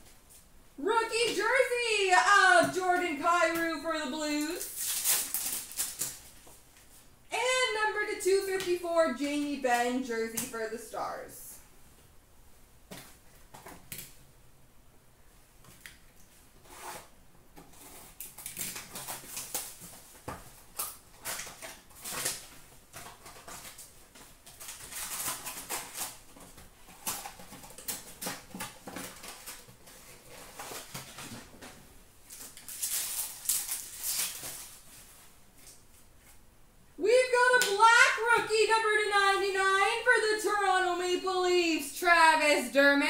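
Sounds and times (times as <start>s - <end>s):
wrappers crinkling and rustling: 4.4s - 7.0s, 17.7s - 36.4s
card packs being torn open: 4.5s - 6.2s, 17.8s - 31.4s, 32.3s - 34.8s.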